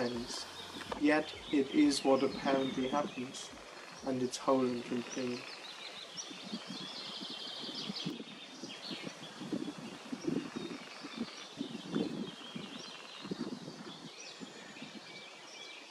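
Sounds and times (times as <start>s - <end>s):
small birds chirping: 0.0s - 15.9s.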